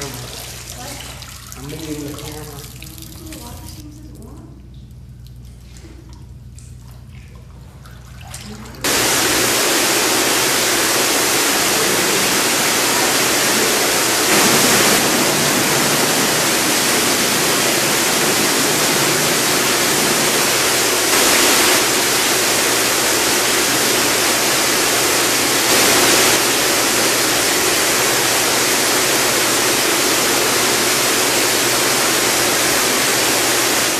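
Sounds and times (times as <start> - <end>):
loud even hiss: 8.8 - 33.9
low hum: 8.9 - 23.9.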